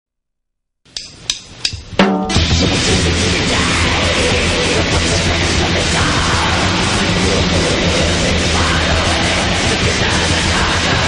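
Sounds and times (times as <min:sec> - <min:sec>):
drumsticks clicking together: 0:00.9 - 0:01.9.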